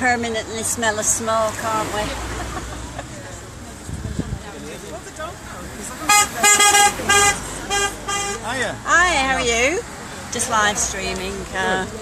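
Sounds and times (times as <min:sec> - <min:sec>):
vehicle horn: 0:06.1 - 0:08.5.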